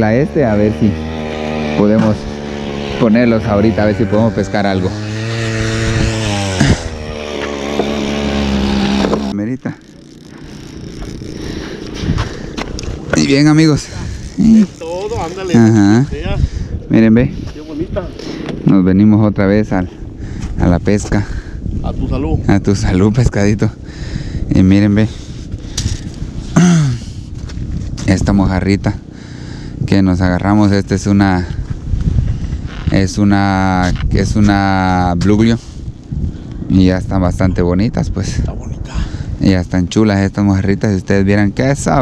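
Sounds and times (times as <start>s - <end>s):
engine running steadily: 0.0s - 18.8s, 23.2s - 32.7s
wind rumbling on microphone: 0.0s - 42.0s.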